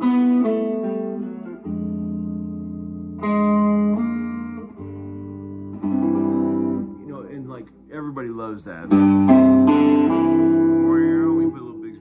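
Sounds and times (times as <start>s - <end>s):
clean electric guitar: 0.0s - 12.0s.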